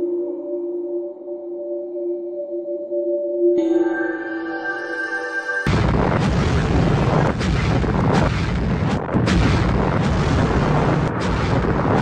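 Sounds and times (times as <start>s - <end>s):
loud deep explosion blast: 5.7s - 12.0s.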